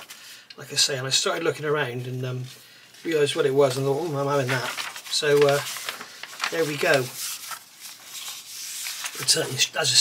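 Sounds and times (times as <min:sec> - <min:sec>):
paper sheets rustling: 0:00.0 - 0:10.0.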